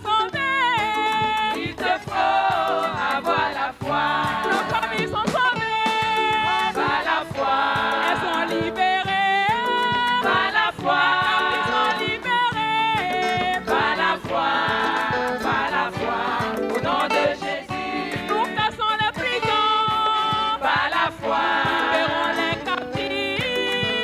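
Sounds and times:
rhythmic hand clapping: 0.0 - 24.0
soloist singing into microphone: 0.0 - 24.0
choir singing gospel: 0.2 - 24.0.

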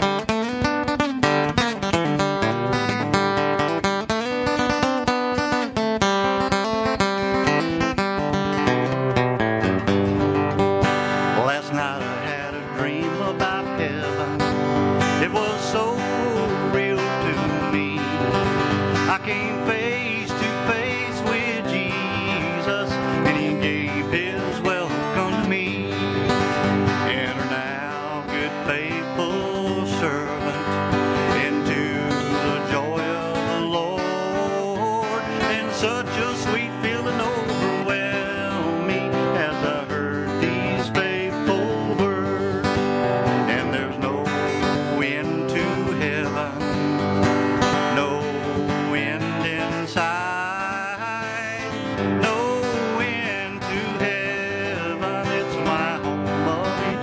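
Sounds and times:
acoustic guitar strumming: 0.0 - 57.0
man singing: 11.1 - 57.0.

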